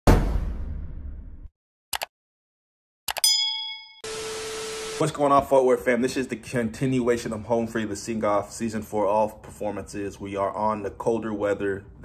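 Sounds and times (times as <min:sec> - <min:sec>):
heavy boom: 0:00.1 - 0:01.5
bell-like ding: 0:03.2 - 0:04.2.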